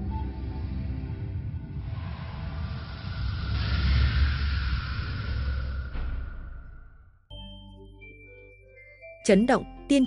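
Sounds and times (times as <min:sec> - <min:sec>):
deep rumble: 0:00.0 - 0:07.3.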